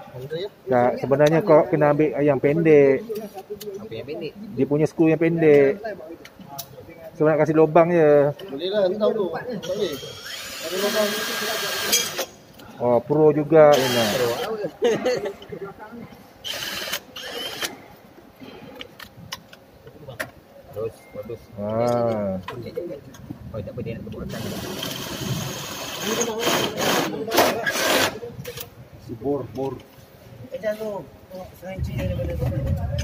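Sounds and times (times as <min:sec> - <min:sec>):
cordless drill boring into metal: 0:09.6 - 0:12.3, 0:13.7 - 0:14.5, 0:16.5 - 0:17.7, 0:24.3 - 0:28.2.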